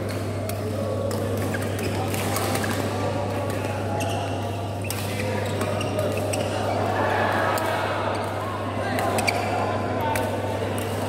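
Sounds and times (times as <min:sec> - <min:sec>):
badminton rackets hitting shuttlecocks: 0:10.1 - 0:11.0.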